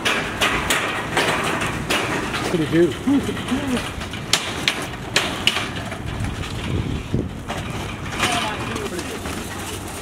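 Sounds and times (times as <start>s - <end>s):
sharp knocks: 0.0s - 6.8s
shopping carts rattling on asphalt: 0.0s - 10.0s.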